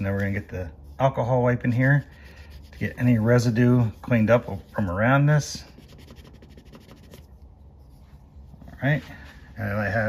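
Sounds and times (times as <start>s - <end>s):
pad rubbing on car panel: 1.6s - 8.7s.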